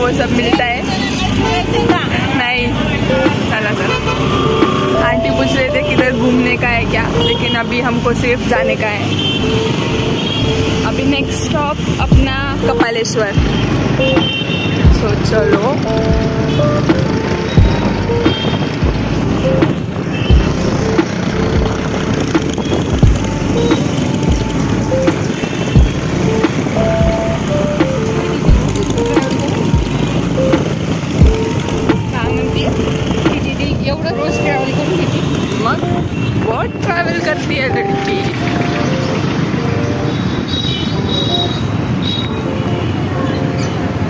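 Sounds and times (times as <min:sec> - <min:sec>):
road and engine noise: 0:00.0 - 0:44.0
song playing: 0:00.0 - 0:44.0
wind buffeting microphone: 0:14.6 - 0:40.5.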